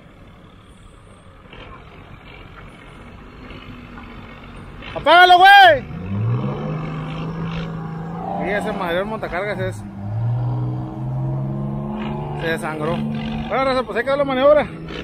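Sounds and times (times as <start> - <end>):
truck engine running: 0.0 - 15.0.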